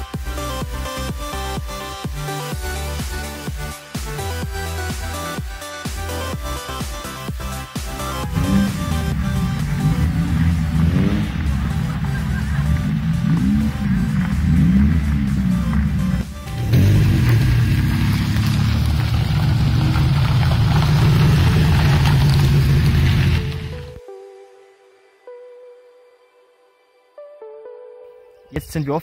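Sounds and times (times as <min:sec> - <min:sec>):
music: 0:00.0 - 0:19.1, 0:22.0 - 0:29.0
car engines revving: 0:08.0 - 0:24.0.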